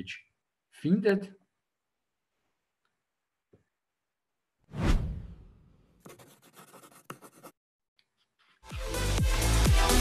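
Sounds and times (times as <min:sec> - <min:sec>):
scratchy scribbling noise: 0:06.0 - 0:07.6.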